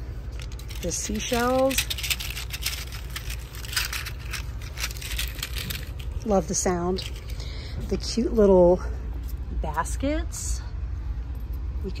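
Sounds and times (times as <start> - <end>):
seashells clinking in mesh bag: 0.4 - 7.4.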